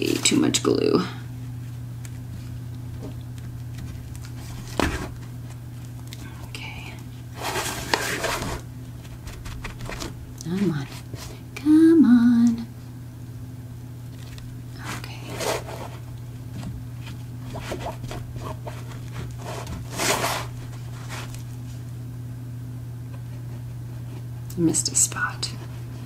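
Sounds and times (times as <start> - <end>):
steady low hum: 0.0 - 26.0
hands rustling paper and fabric: 7.4 - 11.4.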